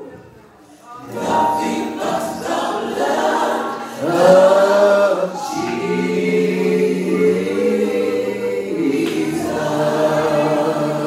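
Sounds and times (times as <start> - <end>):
group singing gospel song: 1.0 - 11.0.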